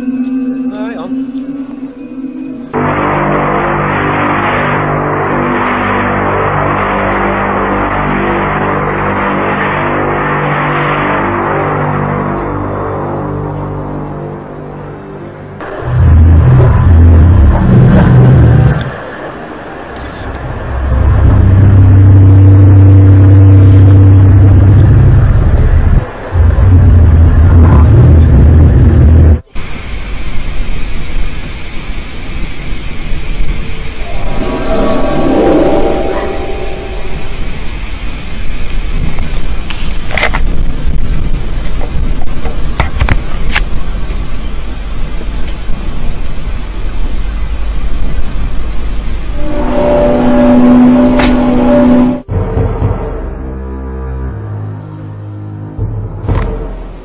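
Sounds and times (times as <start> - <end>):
deep droning hum: 0.0 - 29.5, 33.6 - 39.6, 45.8 - 57.0
steady hiss: 29.5 - 51.7
wavering groan: 34.0 - 37.6.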